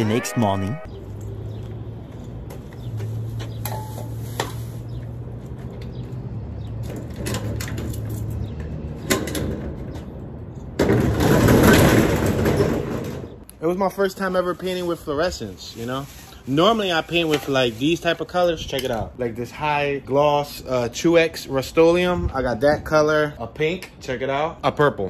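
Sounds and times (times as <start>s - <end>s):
roll-up door rattling: 10.8s - 13.4s.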